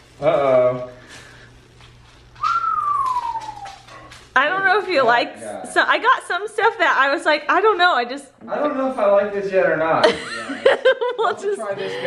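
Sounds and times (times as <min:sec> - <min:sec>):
long whistled note sliding down: 0:02.4 - 0:03.8.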